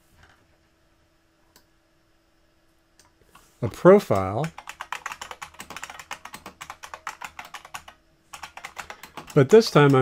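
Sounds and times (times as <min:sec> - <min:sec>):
computer keyboard typing: 0:04.1 - 0:10.0.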